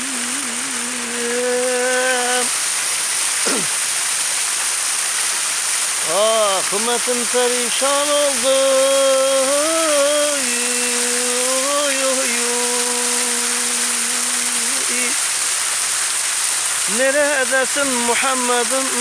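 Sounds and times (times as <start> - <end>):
man singing a hymn: 0.0 - 2.6, 6.0 - 15.2, 16.9 - 19.0
fountain water splashing: 0.0 - 19.0.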